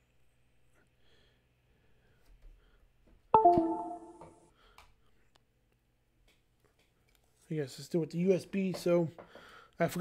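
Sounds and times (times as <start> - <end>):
two-note descending computer chime: 3.4 - 4.2.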